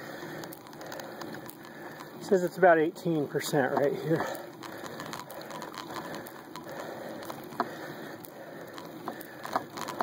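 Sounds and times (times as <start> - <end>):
bicycle climbing on asphalt: 0.0 - 10.0.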